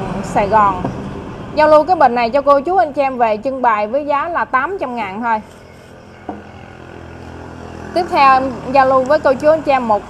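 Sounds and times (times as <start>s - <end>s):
vehicle engine hum: 4.1s - 10.0s
vase knocking on wooden table: 6.3s - 6.6s.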